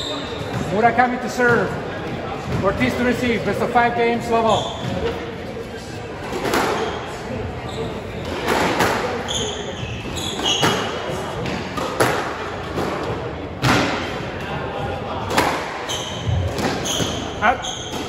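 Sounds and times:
shoes squeaking on wooden floor: 4.4s - 5.2s, 9.2s - 11.1s, 15.9s - 18.0s
squash ball hitting walls: 10.4s - 14.1s.

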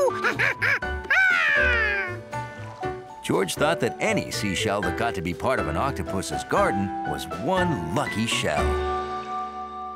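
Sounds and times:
soft background music: 0.0s - 9.9s
cartoon character's wordless cry: 1.1s - 2.2s.

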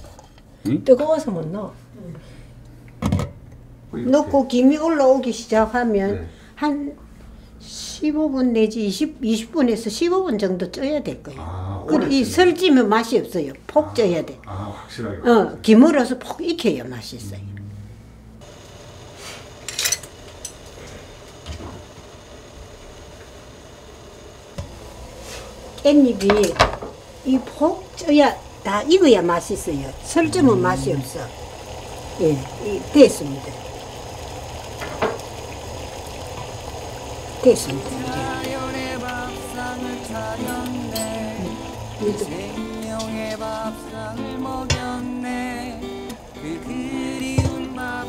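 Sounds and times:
low steady hum: 0.0s - 48.0s
pot steaming hiss: 18.4s - 48.0s.

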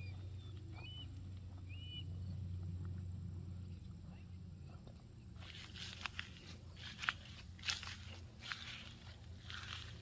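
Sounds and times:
low steady rumble: 0.0s - 10.0s
footsteps on grass: 5.4s - 10.0s.

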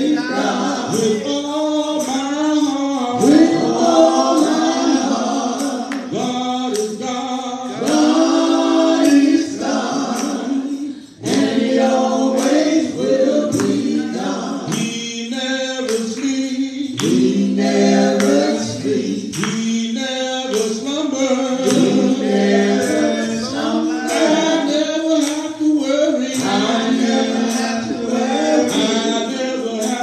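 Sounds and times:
man singing into a microphone: 0.0s - 8.1s, 12.2s - 30.0s
congregation singing along: 0.0s - 30.0s.

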